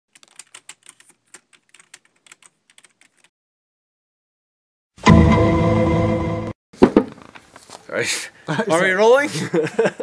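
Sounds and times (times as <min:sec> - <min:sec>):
keyboard typing: 0:00.1 - 0:03.3.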